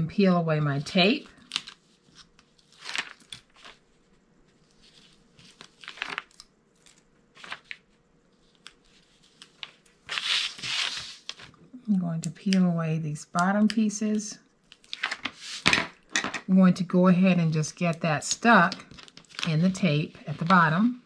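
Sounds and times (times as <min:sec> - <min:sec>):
paper rustling: 0:00.9 - 0:11.6, 0:14.7 - 0:15.9, 0:18.8 - 0:20.7.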